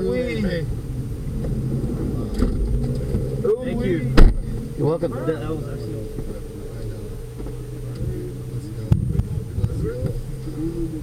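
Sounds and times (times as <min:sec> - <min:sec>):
van engine idling: 0:00.0 - 0:11.0.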